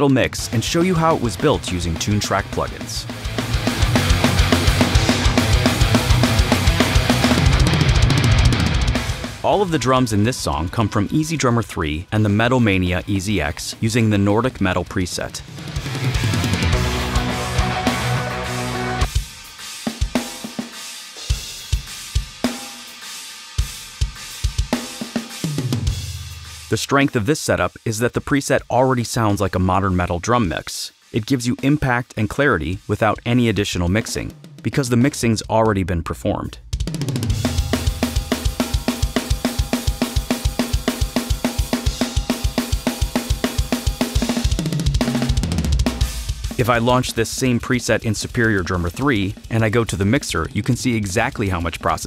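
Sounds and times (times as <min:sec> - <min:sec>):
metal band playing: 0:00.0 - 0:35.7, 0:36.5 - 0:52.0
metal drum kit groove: 0:00.0 - 0:52.0
kick drum strokes: 0:03.0 - 0:09.5, 0:36.6 - 0:50.3
cymbals: 0:15.3 - 0:26.8, 0:37.1 - 0:49.6
tom fill falling in pitch: 0:37.1 - 0:41.0.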